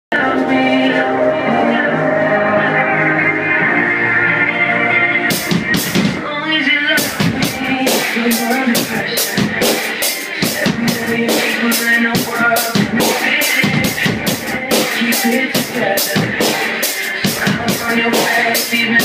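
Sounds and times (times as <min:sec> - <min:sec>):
recorded pop song: 0:00.1 - 0:19.0
drum kit steady beat: 0:05.2 - 0:19.0.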